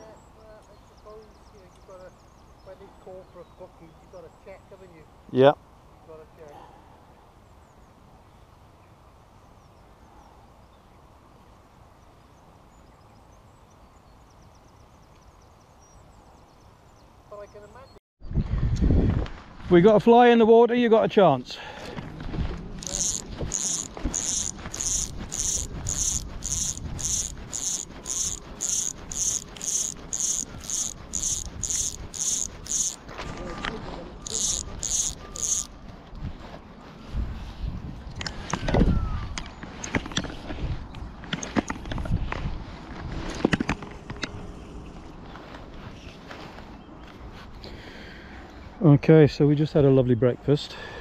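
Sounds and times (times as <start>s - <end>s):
fly line hissing through rod rings: 22.8s - 33.0s, 34.2s - 35.7s.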